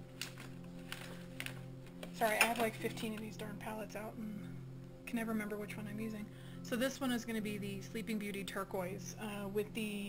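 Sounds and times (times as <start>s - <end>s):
quiet background music: 0.0s - 10.0s
palettes clicking on table: 0.2s - 3.4s.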